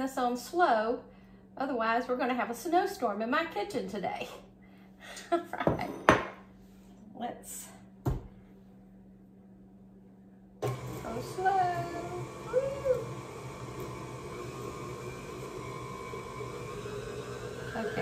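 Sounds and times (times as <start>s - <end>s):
stand mixer running: 10.6s - 18.0s.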